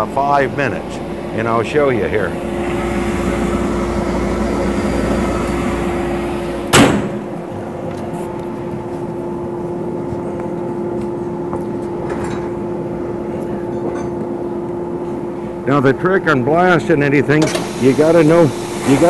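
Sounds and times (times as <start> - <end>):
sharp burst of noise: 0.0 - 7.4
blast cabinet humming: 0.0 - 19.0.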